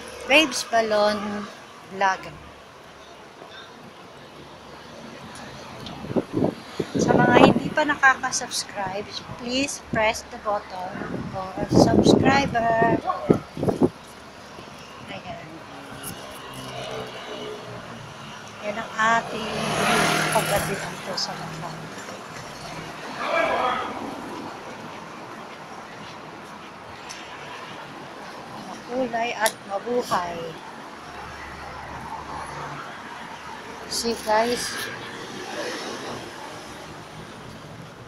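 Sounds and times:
road traffic: 0:00.0 - 0:38.0.

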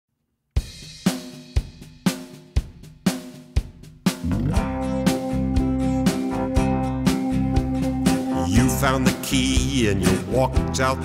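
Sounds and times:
drum kit playing a steady beat: 0:00.6 - 0:11.0.

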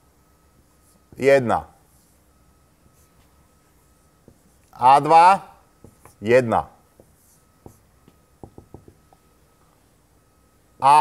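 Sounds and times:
marker tapping on whiteboard: 0:05.8 - 0:06.2, 0:07.0 - 0:09.2.

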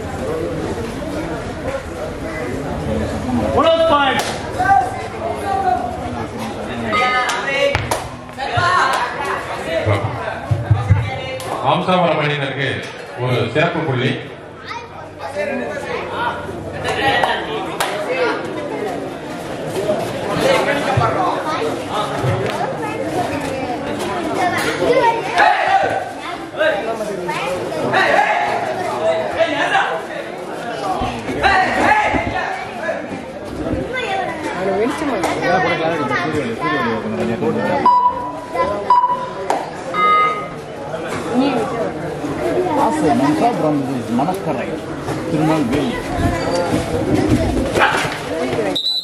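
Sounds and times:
crowd chattering: 0:00.0 - 0:49.0.

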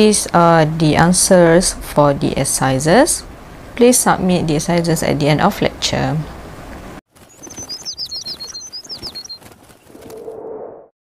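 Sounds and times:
high bird tweets: 0:07.2 - 0:09.5.

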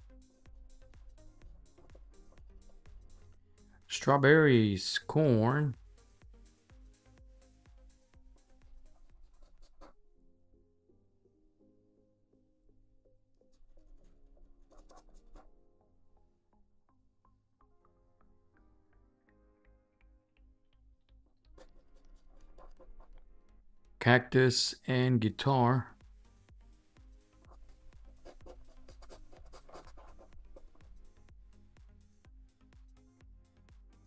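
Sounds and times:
faint background music: 0:00.0 - 0:34.0
coin scratching paper ticket: 0:28.1 - 0:30.4.

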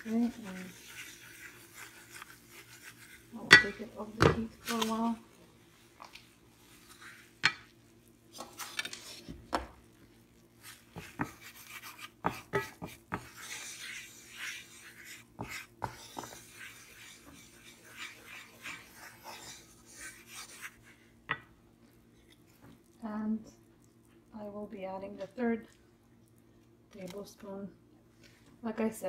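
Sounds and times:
spoon scraping through roux: 0:00.0 - 0:05.1, 0:06.6 - 0:07.4, 0:08.4 - 0:09.3, 0:10.6 - 0:21.2.

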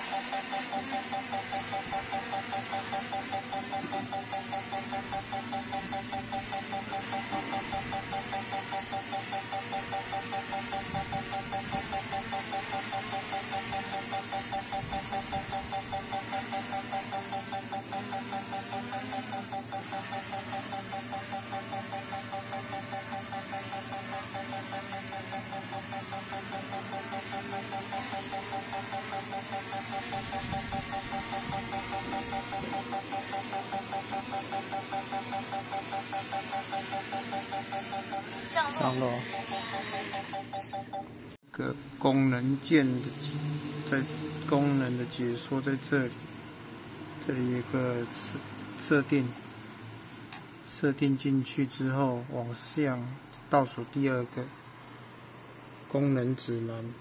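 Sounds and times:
drone propellers humming: 0:00.0 - 0:40.5.

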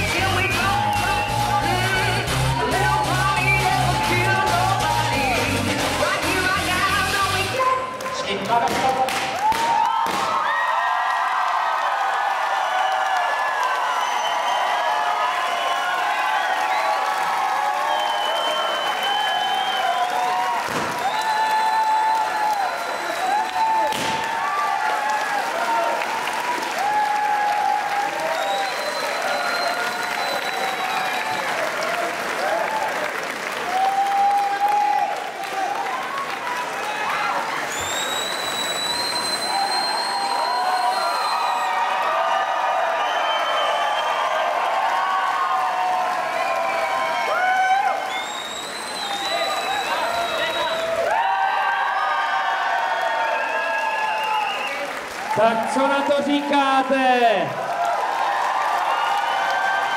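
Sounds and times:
crowd shouts and whoops: 0:00.0 - 0:05.9, 0:09.3 - 0:59.9
audience clapping: 0:00.0 - 0:59.9.

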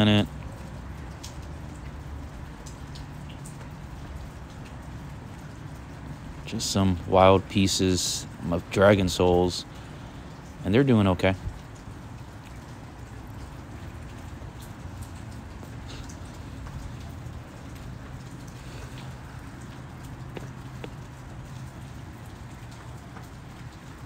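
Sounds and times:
running water rushing: 0:00.0 - 0:24.0.

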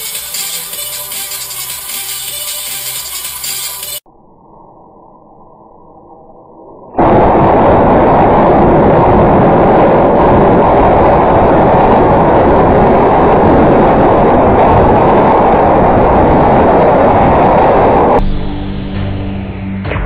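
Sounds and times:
harsh distorted noise: 0:00.0 - 0:04.0, 0:06.9 - 0:20.0.

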